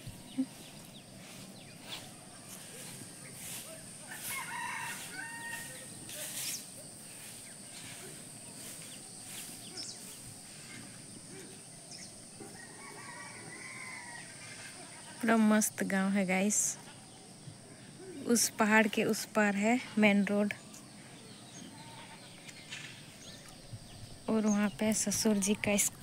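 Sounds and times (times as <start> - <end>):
rooster crowing faintly: 2.0 - 6.6, 12.4 - 15.0.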